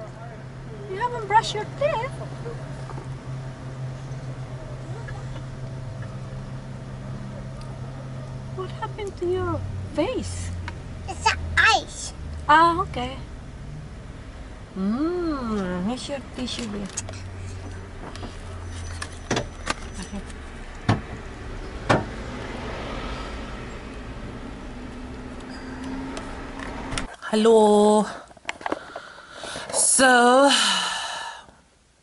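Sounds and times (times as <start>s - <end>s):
car engine hum inside cabin: 0.0s - 27.1s
low steady rumble: 0.0s - 32.0s
sharp knocks in a car: 20.8s - 22.2s.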